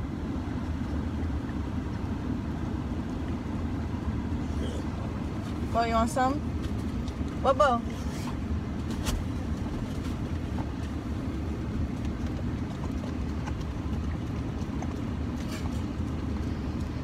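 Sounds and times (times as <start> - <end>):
car engine running: 0.0 - 17.0
dogs licking: 2.8 - 17.0.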